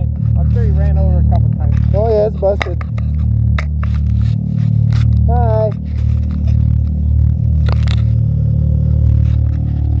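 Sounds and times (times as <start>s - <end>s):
engine idling: 0.0s - 10.0s
clicks and scrapes: 0.1s - 8.3s.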